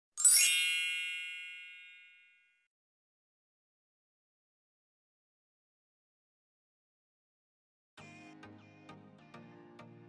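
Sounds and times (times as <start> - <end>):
bright bell-like chime: 0.2 - 2.6.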